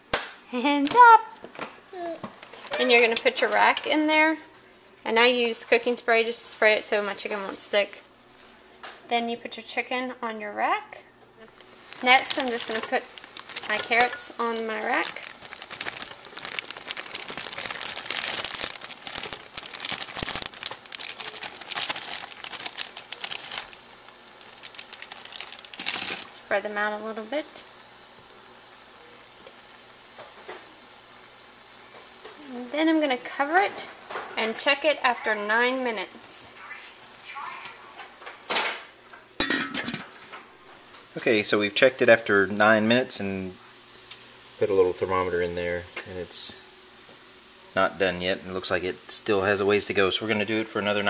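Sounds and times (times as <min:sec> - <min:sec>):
plastic bag crinkling: 0:11.6 - 0:28.2
pot lid clattering and rattling: 0:39.4 - 0:40.2.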